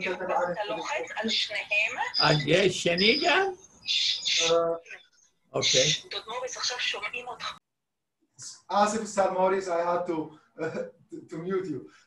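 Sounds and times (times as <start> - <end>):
person talking over video call: 0.0 - 6.2, 8.3 - 12.0.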